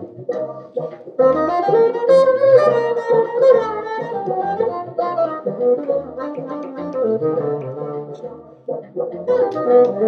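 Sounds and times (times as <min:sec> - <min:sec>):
electric bassoon melody: 0:00.0 - 0:10.0.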